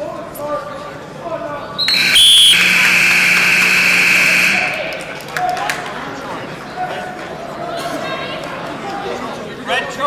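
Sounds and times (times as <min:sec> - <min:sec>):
scoreboard buzzer: 0:02.0 - 0:05.0.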